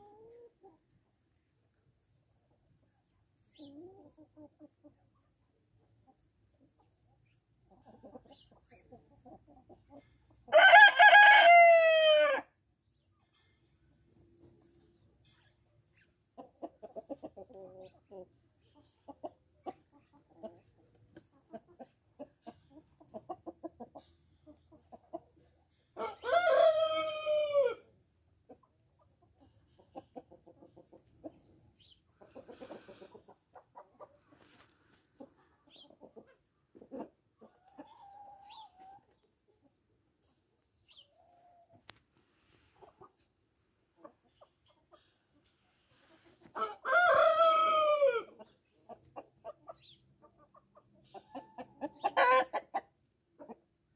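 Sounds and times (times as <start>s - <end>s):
chickens clucking: 0.0s - 10.6s, 12.9s - 53.9s
rooster crowing: 10.5s - 12.4s, 46.6s - 48.3s.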